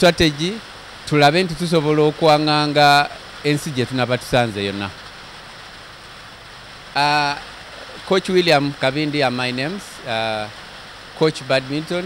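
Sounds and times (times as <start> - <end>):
person speaking: 0.0 - 5.0, 7.0 - 10.5, 11.2 - 12.0
steady background hiss: 0.0 - 12.0.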